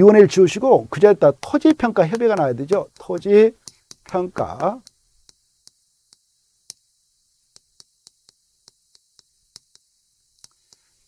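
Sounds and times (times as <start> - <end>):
chalk ticking on chalkboard: 0.3 - 11.0.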